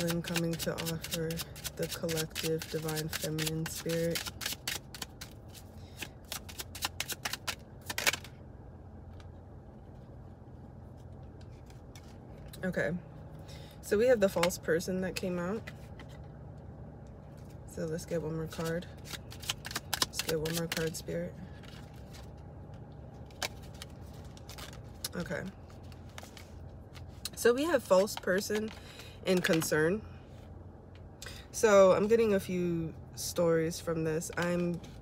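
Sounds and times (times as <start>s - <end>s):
cards being shuffled: 0.0s - 8.3s, 18.5s - 27.3s.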